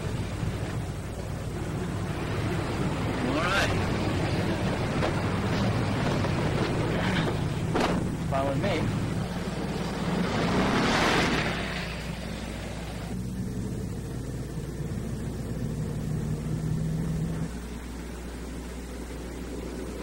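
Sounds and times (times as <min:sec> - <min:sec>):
car engine drone: 0:00.0 - 0:20.0
rushing road noise: 0:00.0 - 0:20.0.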